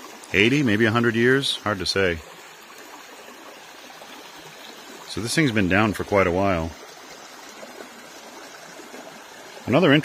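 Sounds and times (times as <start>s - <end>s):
brook running over rocks: 0.0s - 10.0s.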